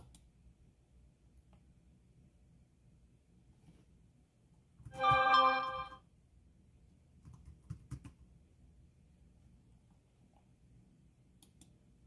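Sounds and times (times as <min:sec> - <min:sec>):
computer keys typing: 0:04.9 - 0:05.9
steady pitched tone: 0:05.0 - 0:06.0.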